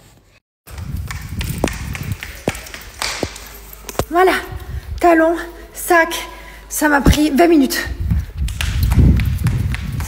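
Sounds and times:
heeled footsteps on hard floor: 0:00.8 - 0:04.7.

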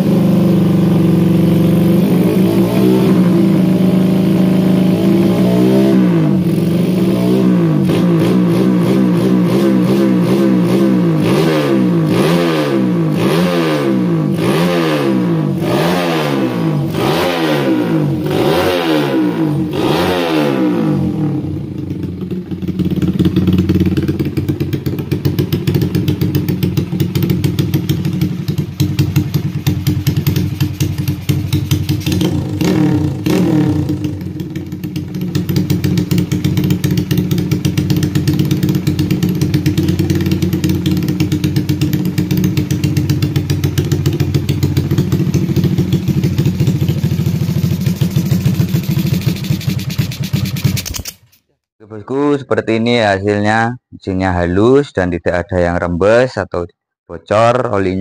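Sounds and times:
motorcycle engine revving and idling: 0:00.0 - 0:51.4.

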